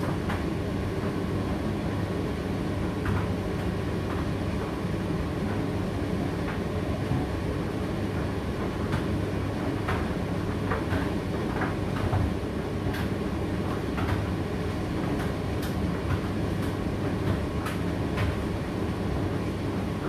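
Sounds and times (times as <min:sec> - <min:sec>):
tumble dryer rumbling: 0:00.0 - 0:20.0.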